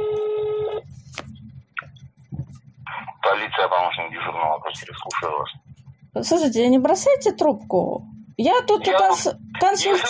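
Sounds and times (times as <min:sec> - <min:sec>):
low line hum: 0:00.0 - 0:10.0.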